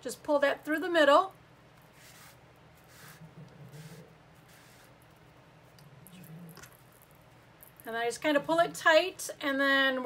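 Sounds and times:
low room hum: 0.0 - 10.0
soft brushing noises: 1.8 - 7.5.

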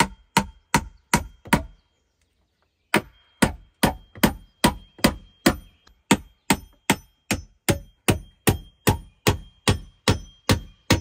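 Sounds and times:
hatchet chopping wood: 0.0 - 1.8, 2.9 - 11.0.

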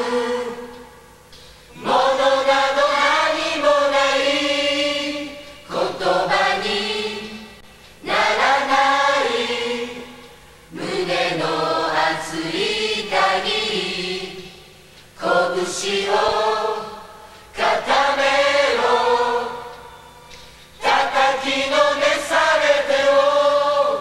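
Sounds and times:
choir singing chant-like phrases: 0.0 - 1.1, 1.7 - 20.0, 20.8 - 24.0.

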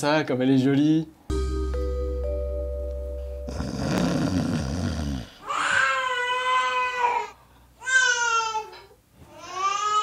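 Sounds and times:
baby crying over monitor: 5.4 - 8.8.

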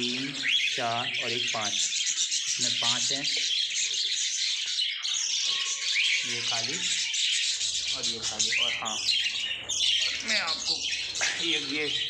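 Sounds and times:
budgerigars chattering and chirping: 0.0 - 12.0.

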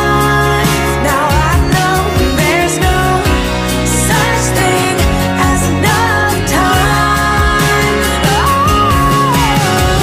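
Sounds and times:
full band accompaniment: 0.0 - 10.0
woman singing: 0.0 - 10.0.

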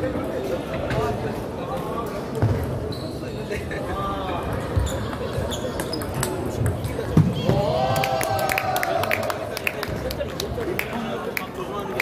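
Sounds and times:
babble of voices: 3.1 - 12.0.

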